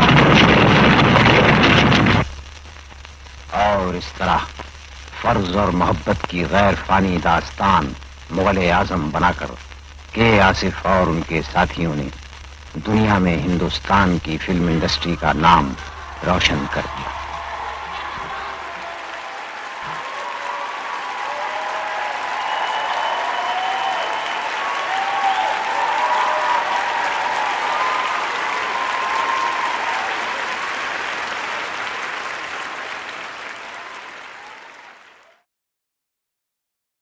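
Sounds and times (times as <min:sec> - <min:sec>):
audience applauding: 0:00.0 - 0:35.5.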